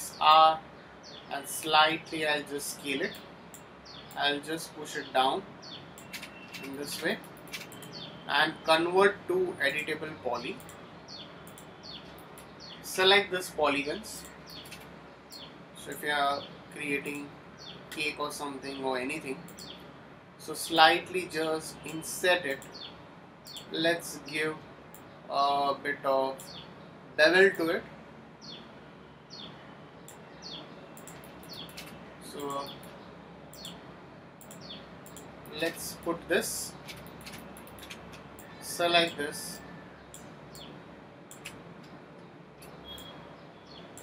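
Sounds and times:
bird chirping faintly: 2.8 - 8.9, 28.4 - 44.0.

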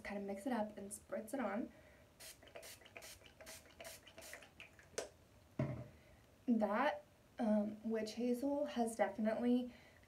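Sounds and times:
mist bottle hissing sprays: 2.2 - 4.5.

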